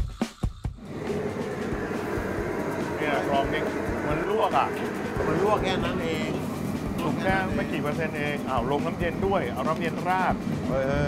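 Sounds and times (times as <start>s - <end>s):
gas wok burner roaring: 0.8s - 11.0s.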